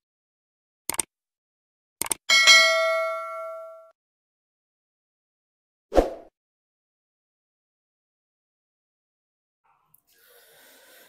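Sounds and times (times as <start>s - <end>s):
bright bell ding: 2.3s - 3.9s.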